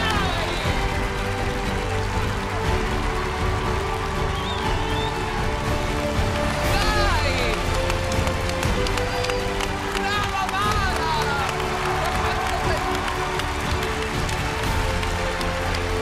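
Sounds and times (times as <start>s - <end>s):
crowd cheering: 0.0s - 16.0s.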